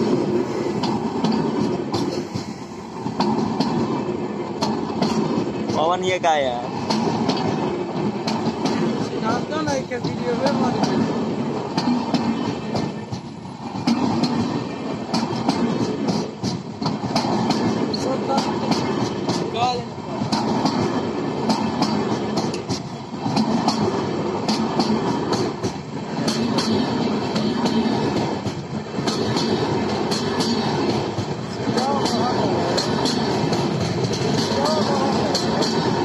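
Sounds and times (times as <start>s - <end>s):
train coaches rolling past: 0.0s - 36.0s
wheels clattering over rail joints: 0.0s - 36.0s.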